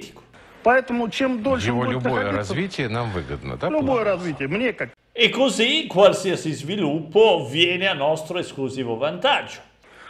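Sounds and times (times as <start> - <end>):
man speaking: 0.0 - 9.8.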